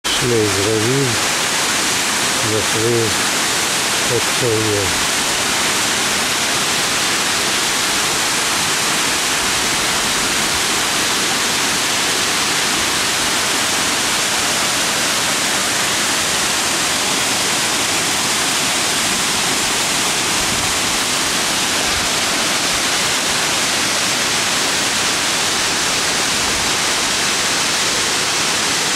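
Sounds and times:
waterfall rushing: 0:00.0 - 0:28.9.

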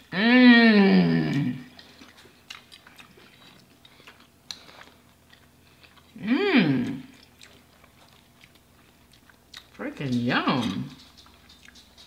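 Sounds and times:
chewing with crunches: 0:01.0 - 0:12.0.

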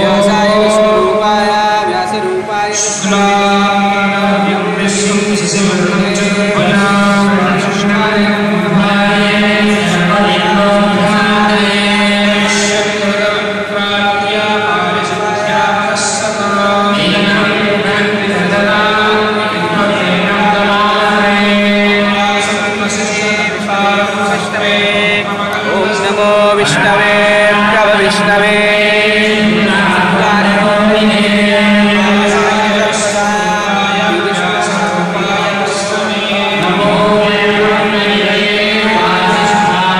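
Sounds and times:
men chanting in monotone: 0:00.0 - 0:39.9.

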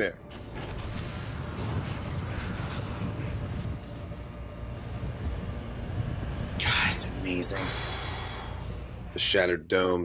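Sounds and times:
spaceship engine rumble: 0:00.3 - 0:10.0.

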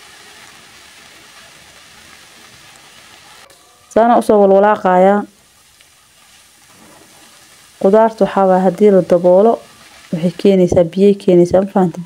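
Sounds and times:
food frying in a pot: 0:00.0 - 0:12.0.

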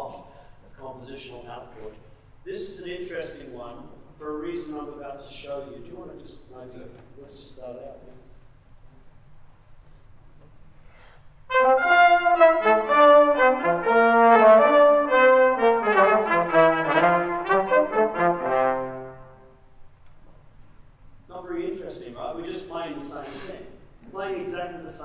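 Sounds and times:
trombone playing: 0:11.5 - 0:19.7
trumpet playing: 0:11.5 - 0:19.7.

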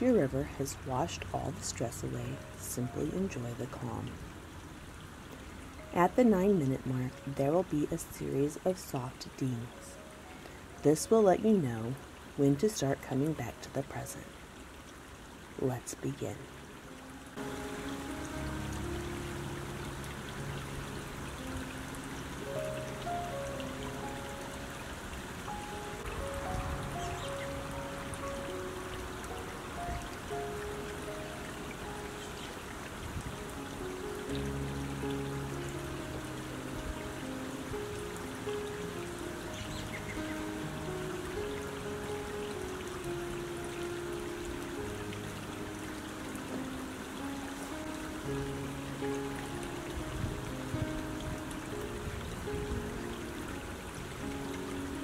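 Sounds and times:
creek running over stones: 0:00.0 - 0:55.0
slow soft background music: 0:00.0 - 0:55.0.

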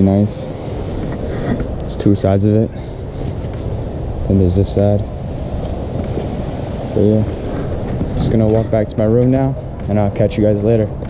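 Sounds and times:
low rumbling outdoor background noise: 0:00.0 - 0:11.0.

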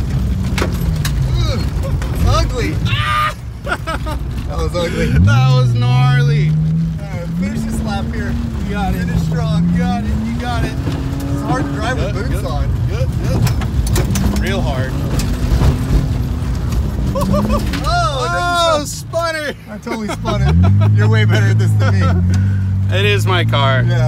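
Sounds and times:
car engine revving: 0:00.0 - 0:24.0
people shouting: 0:02.8 - 0:03.4, 0:17.2 - 0:18.9
people laughing: 0:03.0 - 0:05.4, 0:17.0 - 0:18.7, 0:19.4 - 0:22.6.

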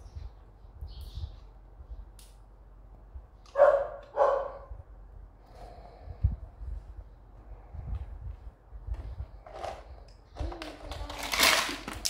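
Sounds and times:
dog barking: 0:03.5 - 0:04.7
plastic toys clicking: 0:09.5 - 0:12.0.

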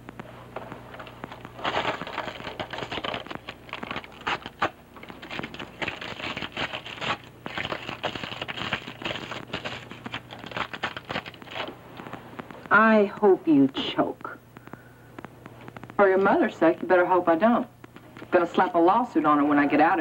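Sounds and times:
hands rustling and crinkling: 0:00.0 - 0:16.4
low steady hum: 0:00.0 - 0:20.0.

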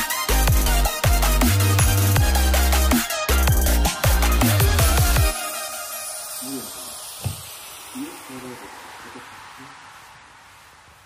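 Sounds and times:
steady background hiss: 0:06.0 - 0:11.0
soft thump: 0:07.2 - 0:07.6.

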